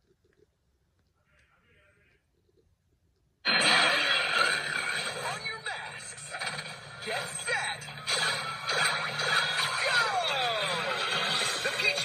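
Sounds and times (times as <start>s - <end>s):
promo soundtrack from tablet speaker: 3.5s - 12.0s.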